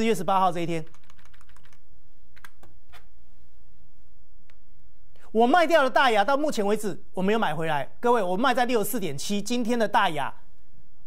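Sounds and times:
keyboard keystrokes: 0.8s - 1.8s.

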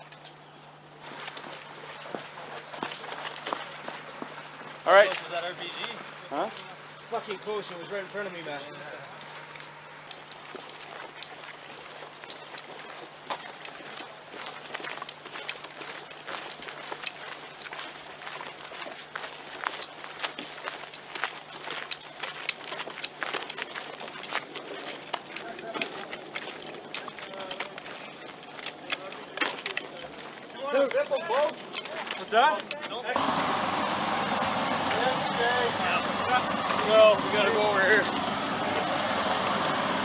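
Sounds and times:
footsteps on dirt: 0.0s - 40.0s
carried kit rattling: 1.0s - 33.2s
muffled men's voices: 4.8s - 9.2s, 25.4s - 33.2s, 34.8s - 39.0s.

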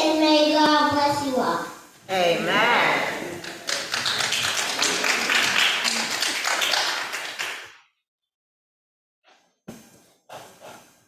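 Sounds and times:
people applauding: 3.0s - 7.7s.

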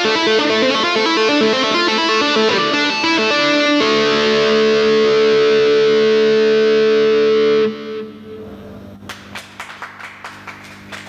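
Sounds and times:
distorted electric guitar chord: 0.0s - 9.0s
sharp claps: 9.0s - 11.0s.

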